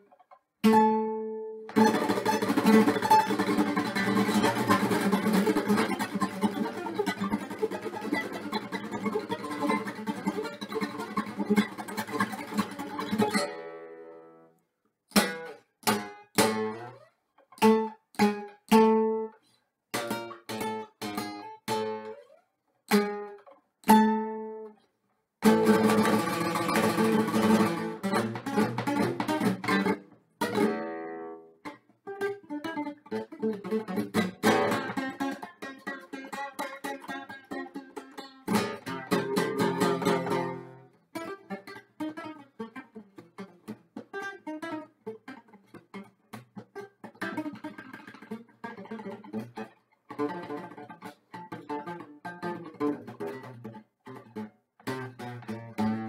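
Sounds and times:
fingerpicked acoustic guitar: 0.0 - 56.0.

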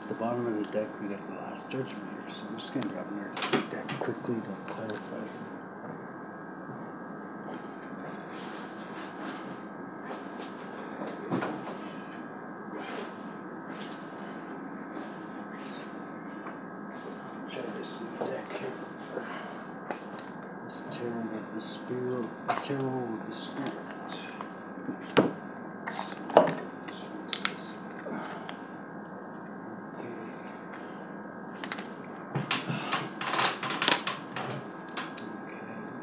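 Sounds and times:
quiet mumbled speech: 0.0 - 5.5, 20.7 - 24.5, 29.6 - 30.7.

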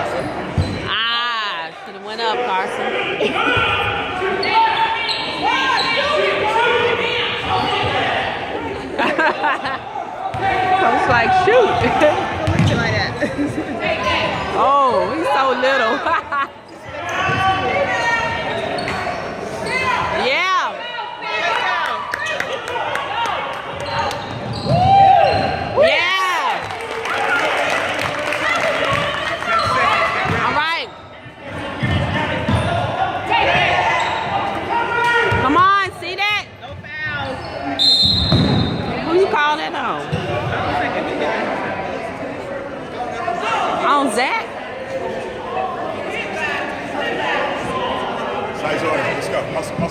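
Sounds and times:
sneaker squeals: 0.0 - 1.2, 3.5 - 6.5, 16.6 - 20.2, 23.7 - 25.8, 29.5 - 35.5, 37.0 - 39.2
spectator chatter: 0.0 - 49.9.

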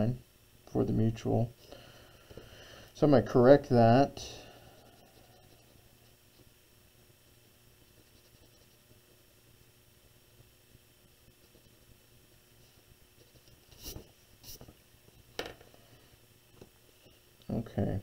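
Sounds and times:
pencil strokes on paper: 4.2 - 6.5, 7.8 - 9.2, 11.3 - 11.9, 12.6 - 14.8.

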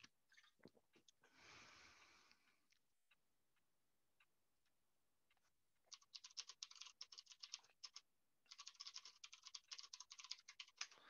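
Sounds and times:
computer keyboard typing: 5.9 - 11.0.

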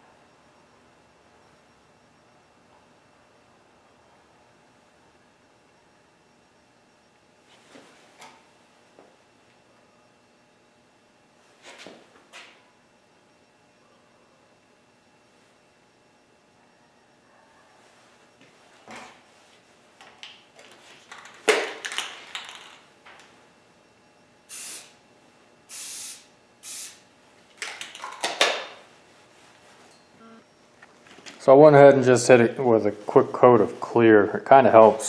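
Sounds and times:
aerosol can spraying: 24.5 - 24.9, 25.7 - 27.0.

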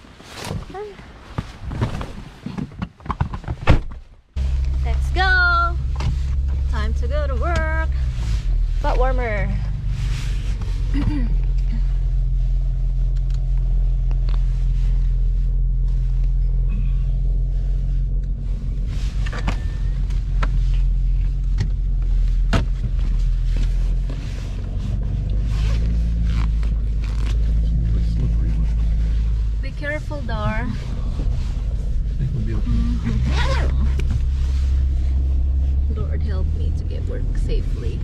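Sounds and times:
car engine idling: 4.3 - 38.0.

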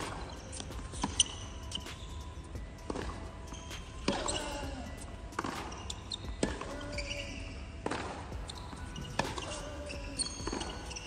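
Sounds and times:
tennis balls struck by rackets: 0.0 - 2.0, 2.9 - 4.8, 5.4 - 11.0.

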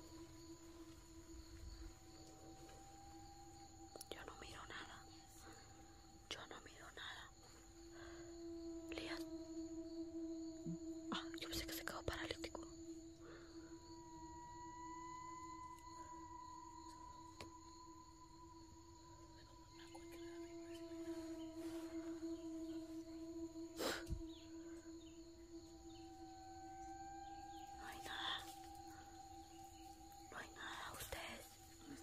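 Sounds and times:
eerie sustained tones: 0.0 - 32.0.

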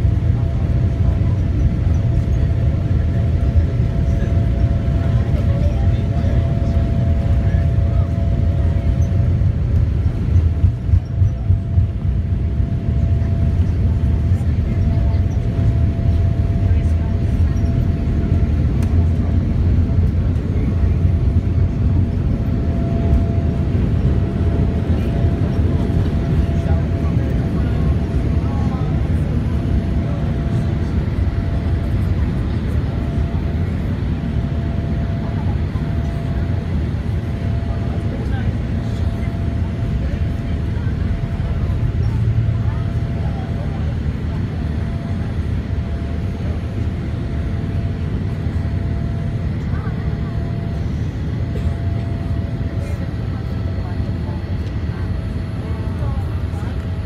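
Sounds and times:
jet engines rumbling in cabin: 0.0 - 57.0.

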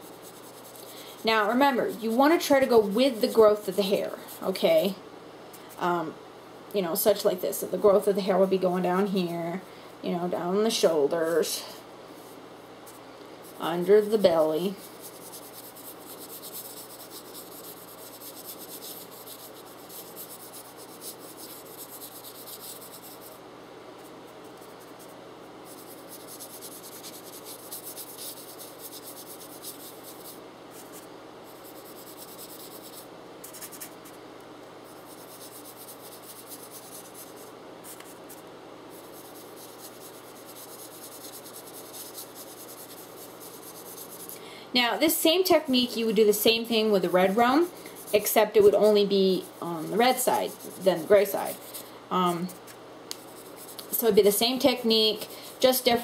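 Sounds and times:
brush bristles scratching: 0.0 - 4.6, 12.2 - 23.4, 24.4 - 34.2, 34.9 - 44.4, 46.1 - 56.0
brush dipped in pastel dust: 39.0 - 44.3.

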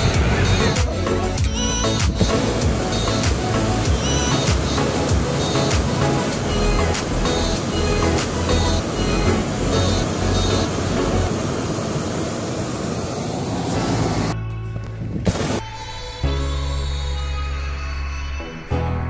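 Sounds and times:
music with steady beat: 0.0 - 11.4
propane burner rushing: 0.0 - 14.4.

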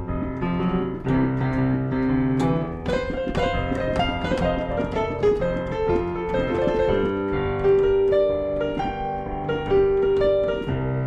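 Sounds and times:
slow blues piano: 0.0 - 11.0.

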